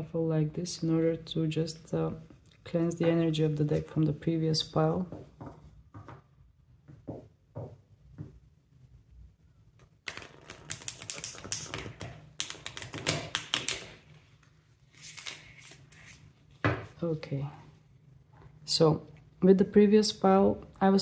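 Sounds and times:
riffle shuffle of cards: 0:10.1 - 0:14.0, 0:14.9 - 0:16.3.

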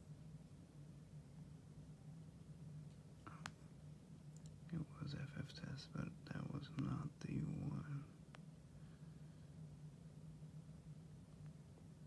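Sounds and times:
steady low hum: 0:00.0 - 0:12.0
man mumbling half-whispered: 0:04.7 - 0:08.1.

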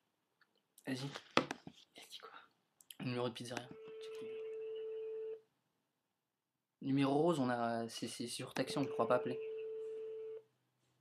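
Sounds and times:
telephone ringing tone: 0:03.8 - 0:05.4, 0:08.7 - 0:10.4.

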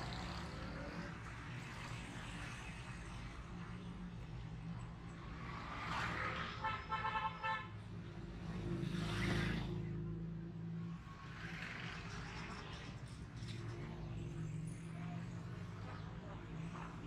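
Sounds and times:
motorcycle and car engines passing: 0:00.0 - 0:06.9, 0:07.7 - 0:17.0.

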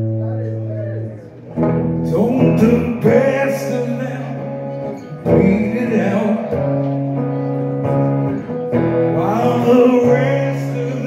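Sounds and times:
guitar strummed chords ringing: 0:00.0 - 0:11.0.

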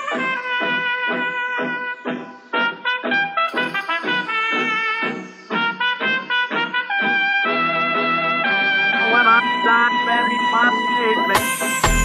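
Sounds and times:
trumpet-like lead notes: 0:00.0 - 0:12.0
dance music over a sound system: 0:08.9 - 0:12.0.

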